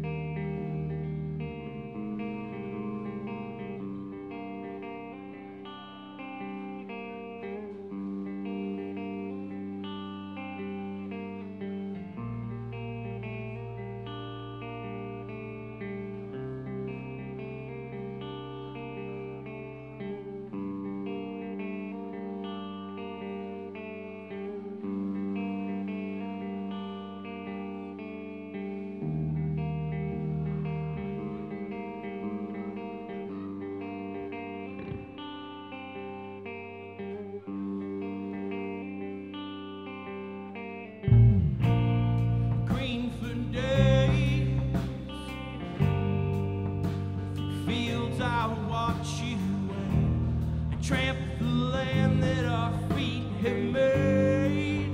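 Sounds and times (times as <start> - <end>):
bass guitar notes: 0.0 - 35.7, 36.4 - 54.9
electric guitars: 0.0 - 54.9.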